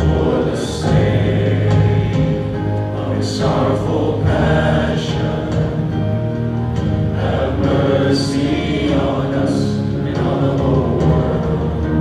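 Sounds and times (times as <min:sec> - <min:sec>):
worship band playing with vocals: 0:00.0 - 0:12.0.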